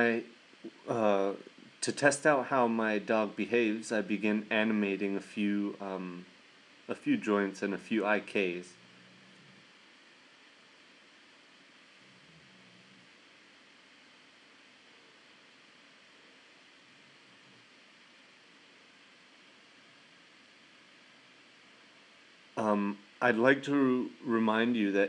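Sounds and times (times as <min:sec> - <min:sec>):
faint microphone hiss: 0:00.0 - 0:25.0.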